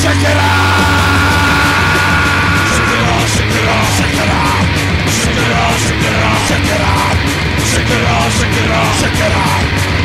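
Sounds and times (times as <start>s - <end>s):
punk rock band music: 0.0s - 10.0s.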